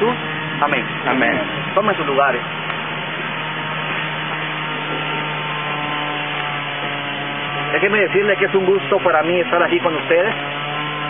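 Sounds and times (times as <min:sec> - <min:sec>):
motor-like drone: 0:00.0 - 0:11.0.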